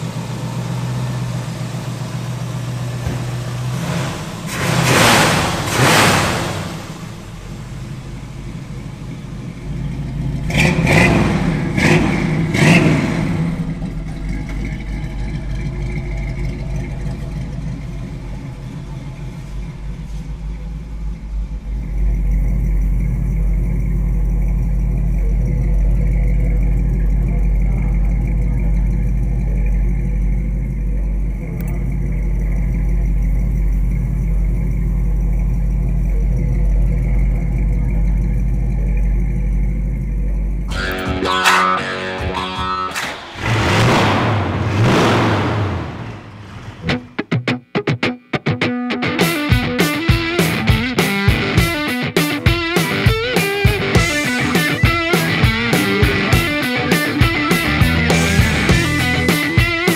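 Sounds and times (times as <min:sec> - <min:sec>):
car engine revving: 0:00.0 - 0:47.6, 0:49.0 - 0:59.9
car engine idling: 0:00.0 - 0:48.3, 0:49.0 - 0:59.9
deep low rumble: 0:06.8 - 0:41.2.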